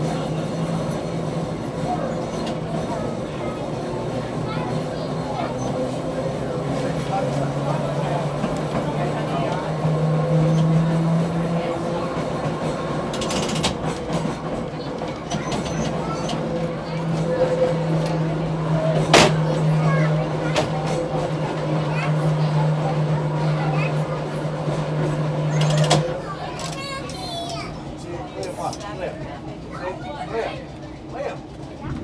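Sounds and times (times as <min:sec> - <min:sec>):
trolley car motors humming: 0:00.0 - 0:32.0.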